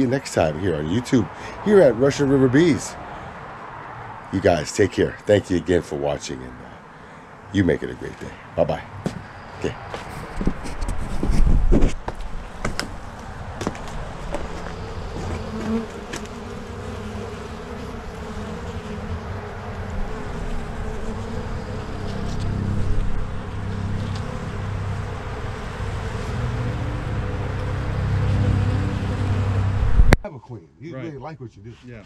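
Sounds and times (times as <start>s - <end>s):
honeybees buzzing: 9.0s - 30.2s.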